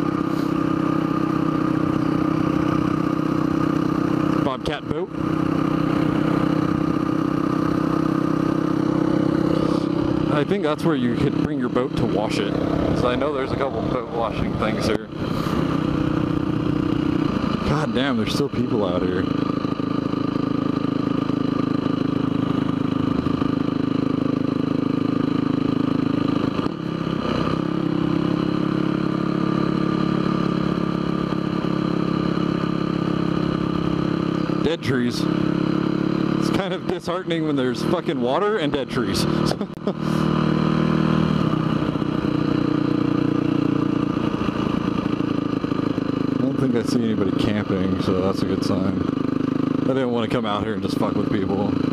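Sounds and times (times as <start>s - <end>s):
dirt bike engine running: 0.0s - 51.9s.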